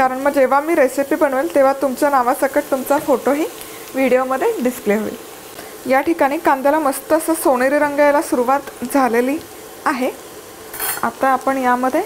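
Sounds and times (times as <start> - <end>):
faint oil sizzle: 0.0 - 12.0
spatula scraping a pan: 10.7 - 11.1.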